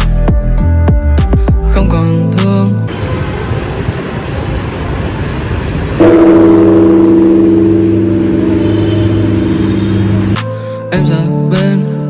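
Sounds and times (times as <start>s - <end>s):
low rumble: 5.7s - 10.4s
large bronze temple bell ringing: 6.0s - 10.4s.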